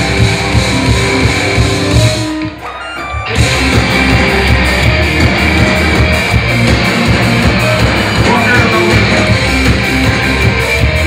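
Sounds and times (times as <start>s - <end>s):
heavy rock band playing: 0.0s - 11.0s.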